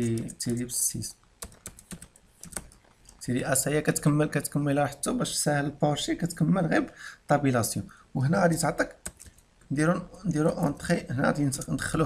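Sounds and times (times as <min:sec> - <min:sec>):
computer keyboard typing: 0:00.0 - 0:00.7, 0:01.4 - 0:03.3, 0:09.0 - 0:09.4.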